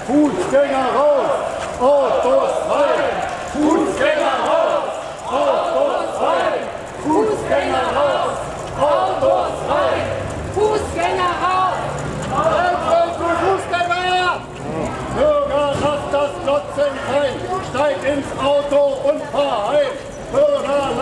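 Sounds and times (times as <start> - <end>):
demonstrators chanting slogans: 0.0 - 21.0.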